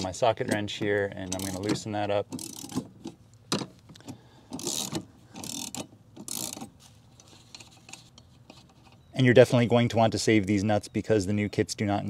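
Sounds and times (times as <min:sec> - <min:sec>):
ratchet wrench clicking: 0:02.3 - 0:02.8, 0:04.5 - 0:06.7.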